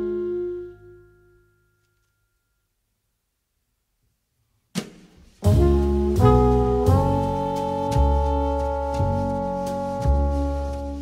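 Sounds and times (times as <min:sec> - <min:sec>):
jazz ensemble playing: 0:00.0 - 0:01.0, 0:05.4 - 0:11.0.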